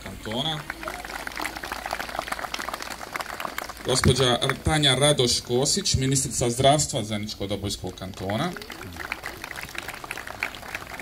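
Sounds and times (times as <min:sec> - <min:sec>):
audience applauding: 0:00.2 - 0:05.9, 0:08.0 - 0:11.0.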